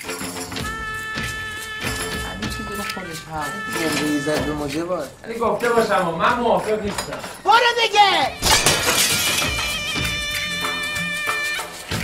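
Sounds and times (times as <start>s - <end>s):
music: 0.0s - 12.0s
glass mirror shattering: 8.4s - 10.0s.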